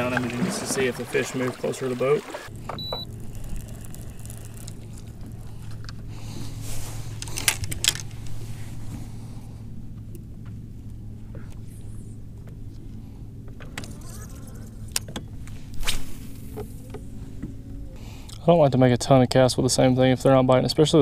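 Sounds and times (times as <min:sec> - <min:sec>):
electric motor humming: 0:02.5 - 0:06.4
fishing reel clicks: 0:03.2 - 0:04.9.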